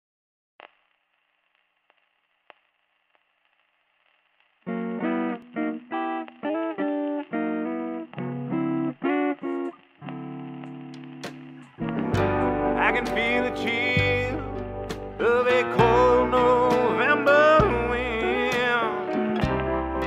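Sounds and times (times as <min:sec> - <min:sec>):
faint hiss: 0:00.6 - 0:19.8
plucked guitar notes and chords: 0:04.7 - 0:20.0.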